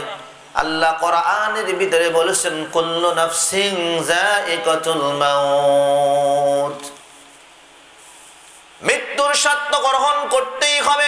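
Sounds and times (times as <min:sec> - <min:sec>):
man chanting: 0:00.0 - 0:07.0, 0:08.8 - 0:11.0.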